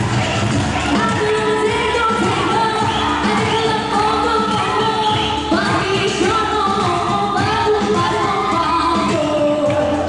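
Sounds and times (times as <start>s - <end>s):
loud backing music: 0.0s - 10.0s
woman singing amplified: 0.7s - 10.0s.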